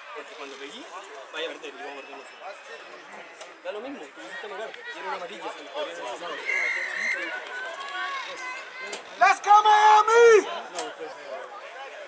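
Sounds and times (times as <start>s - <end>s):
voices shouting: 6.3s - 10.5s.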